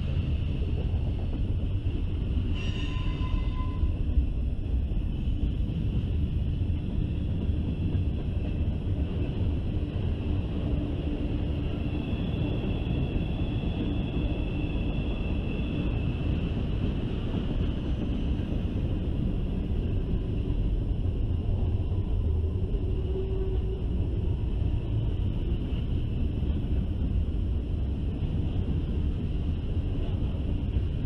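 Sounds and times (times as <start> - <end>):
train wheels rumbling on rail: 0.0 - 31.0
high-pitched wheel squeals: 2.5 - 4.0.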